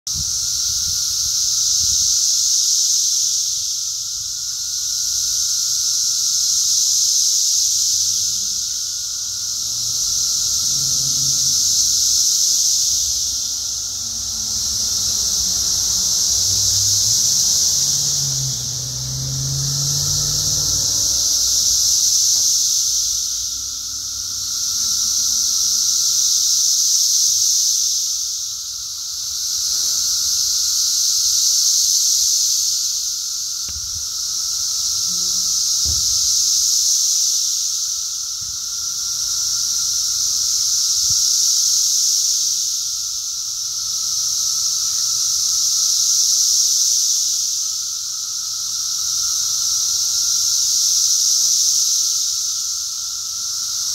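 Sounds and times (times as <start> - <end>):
cicadas buzzing: 0.1 - 53.9.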